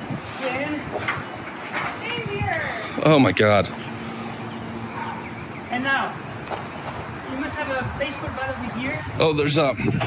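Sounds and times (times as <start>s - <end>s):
indistinct voices talking: 0.3s - 10.0s.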